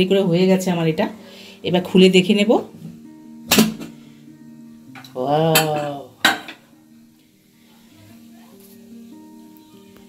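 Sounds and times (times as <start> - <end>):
metal lid clanking down: 5.0 - 6.6.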